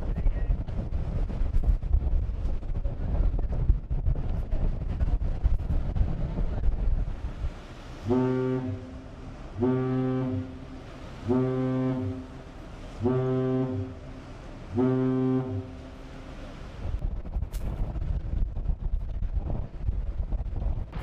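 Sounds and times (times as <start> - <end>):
wind and sea noise: 0.0 - 21.0
deep ship's horn blasts: 7.0 - 17.6.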